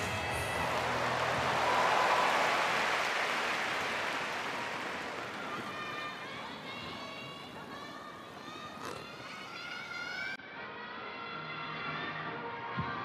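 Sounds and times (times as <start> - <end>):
crowd applause: 0.0 - 7.8.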